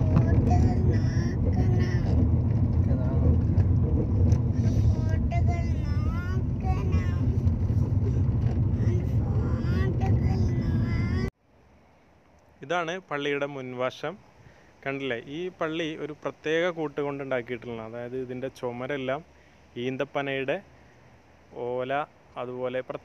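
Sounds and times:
loud low rumble: 0.0 - 11.3.

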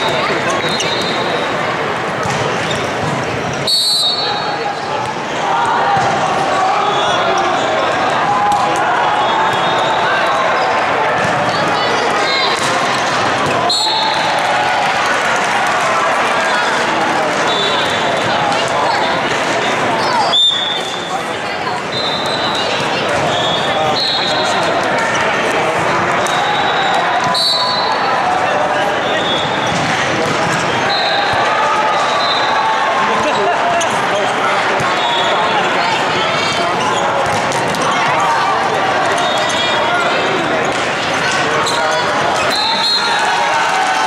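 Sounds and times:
volleyballs hit and bouncing: 0.0 - 6.6, 7.8 - 9.8, 10.7 - 32.2, 33.2 - 44.0
chatter of players and spectators: 0.0 - 44.0
referee whistle blasts: 3.6 - 4.6, 26.2 - 28.0, 30.9 - 31.3, 32.0 - 32.6, 42.4 - 43.2.

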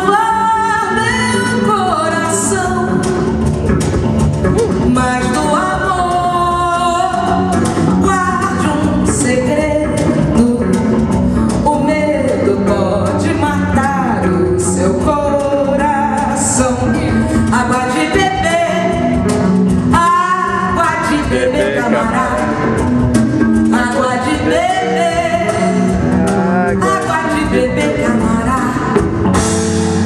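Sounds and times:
women singing bossa nova: 0.0 - 3.2, 4.6 - 11.0, 11.6 - 19.2, 19.8 - 22.9, 23.6 - 26.1, 26.8 - 29.1
guitar accompaniment: 0.0 - 30.0.

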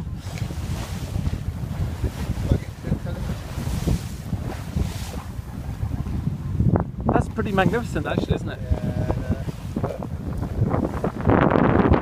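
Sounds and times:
water rushing along boat hull: 0.0 - 12.0
waves or spray surging: 0.0 - 12.0
wind buffeting microphone: 0.0 - 12.0.

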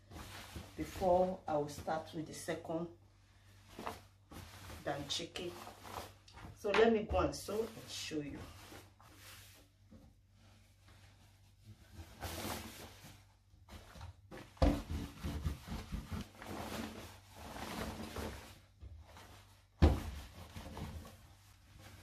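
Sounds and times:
fabric rustling and swishing: 0.0 - 2.5, 3.4 - 22.0.

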